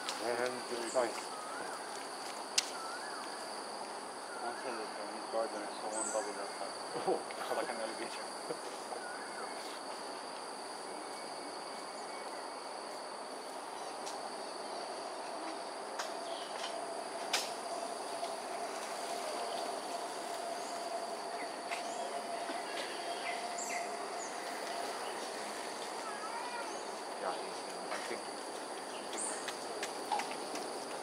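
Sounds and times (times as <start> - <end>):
high-pitched insect drone: 0.0 - 31.0.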